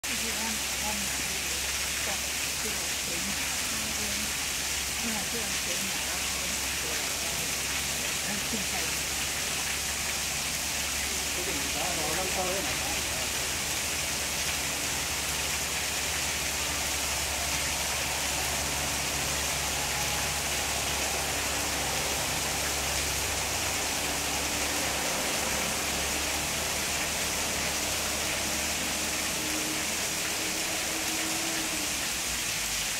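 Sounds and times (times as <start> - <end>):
rushing water: 0.0 - 32.9.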